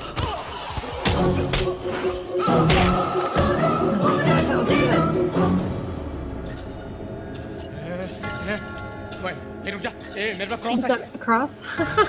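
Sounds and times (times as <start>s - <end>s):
film score with high tones: 0.5s - 12.0s
metallic jingling: 6.4s - 12.0s.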